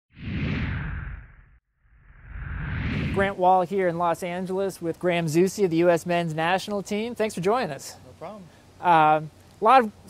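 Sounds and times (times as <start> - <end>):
whoosh sound effect: 0.1 - 3.4
low rumble: 0.2 - 3.4.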